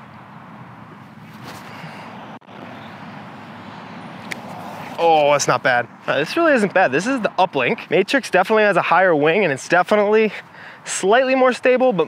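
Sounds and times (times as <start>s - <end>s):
distant road traffic: 0.0s - 12.0s
wind: 0.0s - 12.0s.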